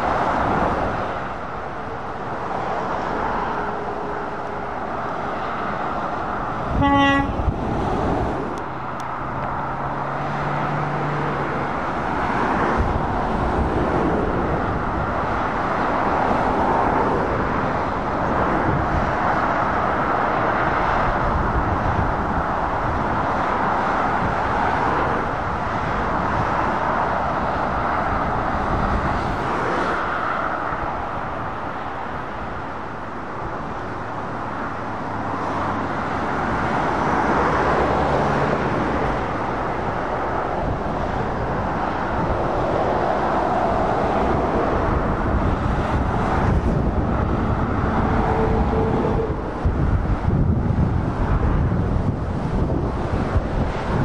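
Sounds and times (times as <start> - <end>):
diesel truck engine hum: 0.0 - 54.0
road traffic: 0.0 - 54.0.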